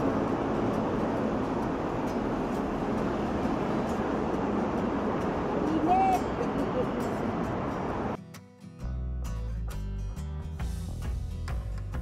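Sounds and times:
street traffic noise: 0.0s - 8.2s.

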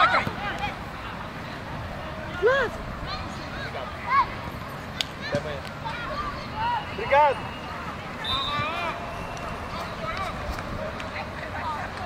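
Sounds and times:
players shouting: 0.0s - 11.8s
open-air background noise: 0.0s - 12.0s.

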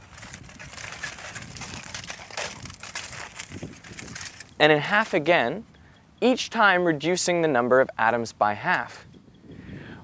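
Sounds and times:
scissors cutting foil: 0.0s - 5.2s
aluminium foil crinkling: 0.0s - 5.3s.

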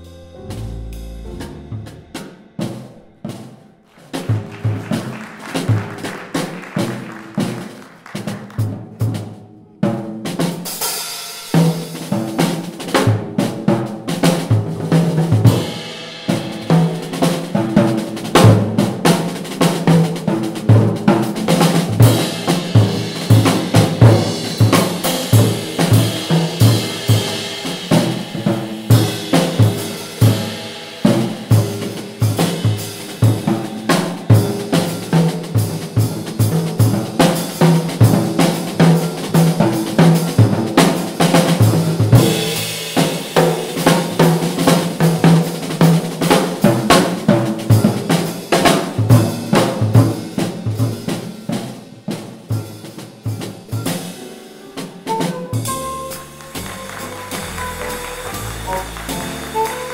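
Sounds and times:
jazz drum kit solo: 0.0s - 59.9s.

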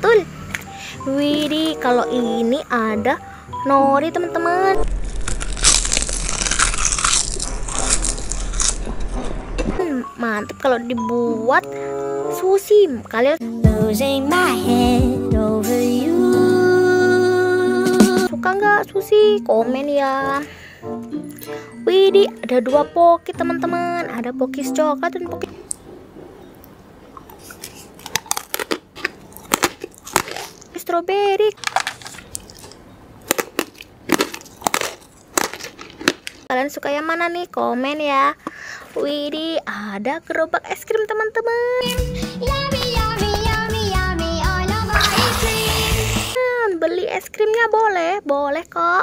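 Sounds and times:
crunching crispy seaweed: 4.9s - 8.9s, 27.3s - 30.8s, 31.6s - 36.5s.

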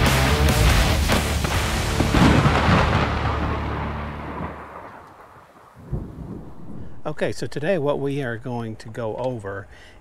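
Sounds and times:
deep cinematic boom: 0.6s - 4.9s.

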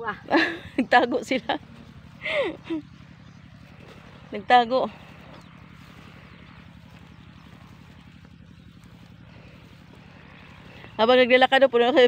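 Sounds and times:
distant engine drone: 0.0s - 12.0s.

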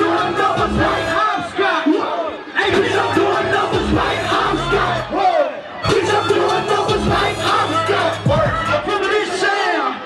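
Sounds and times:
loud backing beat: 0.0s - 1.6s, 2.6s - 9.4s
crowd noise: 0.0s - 10.0s
shouted vocal: 0.0s - 10.0s.

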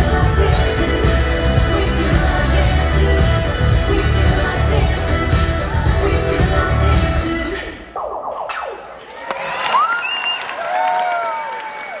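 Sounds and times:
audience applauding and cheering: 8.8s - 12.0s
whoops and whistles: 9.4s - 12.0s.

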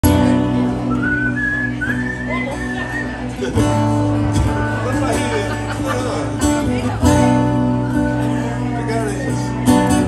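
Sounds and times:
acoustic guitar chords: 0.0s - 10.0s
whistled melody: 0.8s - 3.3s.

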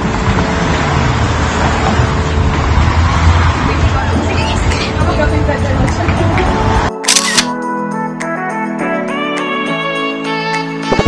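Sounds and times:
dense street noise: 0.0s - 7.4s
background guitar music: 4.0s - 11.0s
camera shutter click: 7.0s - 7.6s.

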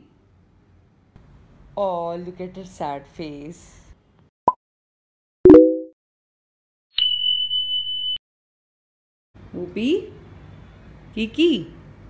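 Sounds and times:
high-pitched electronic beep: 5.5s - 5.9s.

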